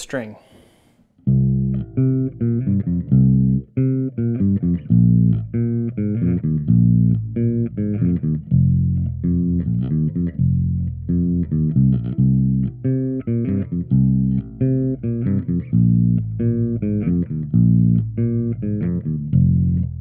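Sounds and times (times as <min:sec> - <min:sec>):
plucked bass guitar riff: 0:01.2 - 0:20.0.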